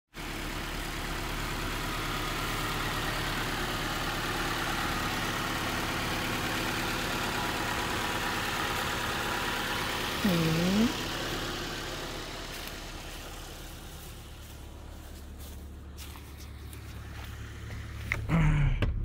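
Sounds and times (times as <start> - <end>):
car engine idling: 0.1 - 19.0.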